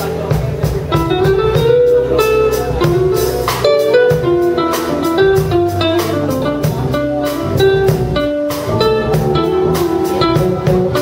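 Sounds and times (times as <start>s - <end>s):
jazz band with bass and drums: 0.0s - 11.0s
jazz guitar melody: 0.0s - 11.0s.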